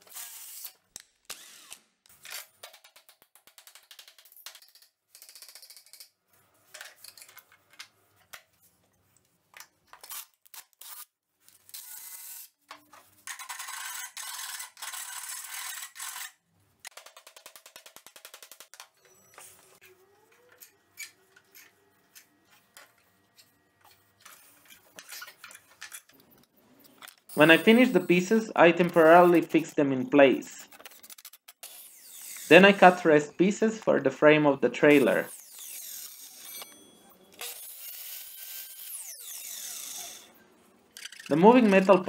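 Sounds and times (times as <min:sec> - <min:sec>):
metal pieces clicking: 0:02.2 - 0:06.1, 0:41.0 - 0:42.0
miter saw cutting wood: 0:27.3 - 0:29.5, 0:31.7 - 0:33.9, 0:34.8 - 0:36.7, 0:37.4 - 0:40.3.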